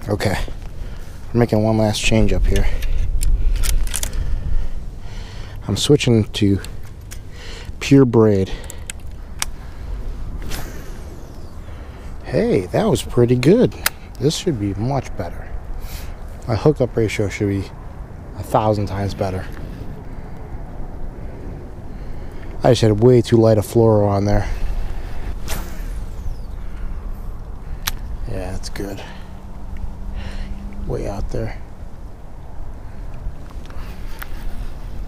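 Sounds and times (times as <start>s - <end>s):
steady low rumble: 0.0s - 35.0s
fishing line running out whine: 24.5s - 28.3s
fishing rod swish: 25.2s - 26.4s
sharp click: 27.8s - 28.1s.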